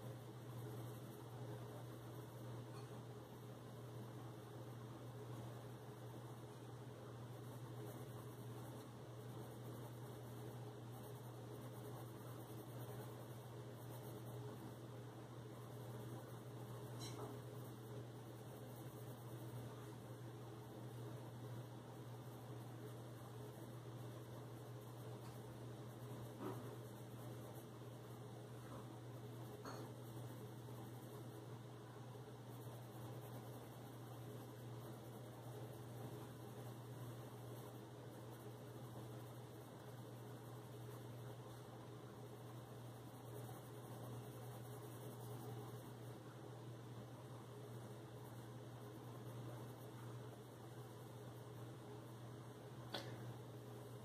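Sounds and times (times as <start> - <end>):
colored pencil scratching on paper: 0.0 - 52.7
steady low hum: 0.0 - 54.0.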